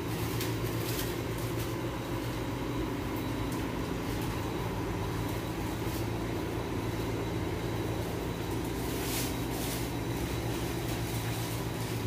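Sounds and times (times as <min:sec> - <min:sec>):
machinery hum and drone: 0:00.0 - 0:12.0.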